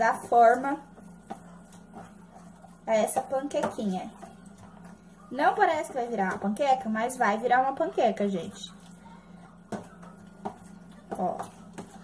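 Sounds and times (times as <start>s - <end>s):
utensil stirring batter: 0.0s - 12.0s.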